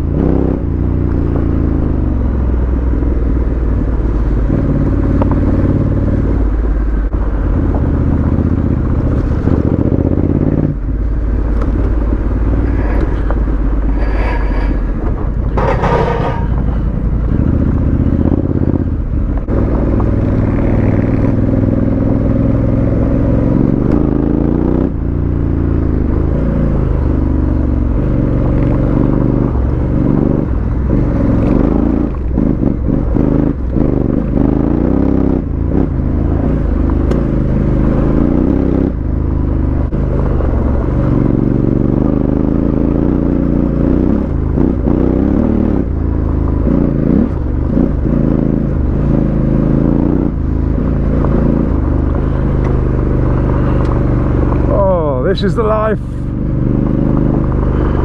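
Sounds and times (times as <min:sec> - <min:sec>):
motorcycle engine revving: 0:00.0 - 0:58.0.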